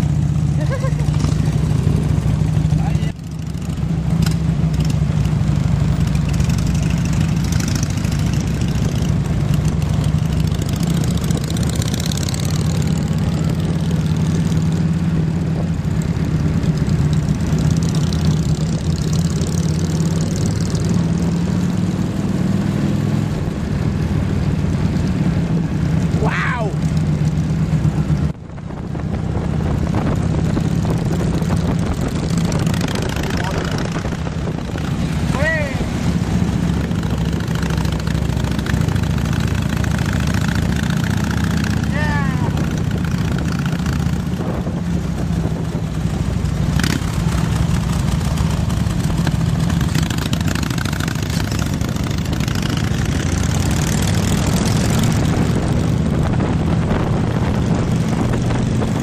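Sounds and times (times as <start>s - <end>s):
motorcycle engines running: 0.0s - 59.0s
wind on microphone: 28.0s - 39.2s, 42.4s - 46.8s, 51.1s - 59.0s.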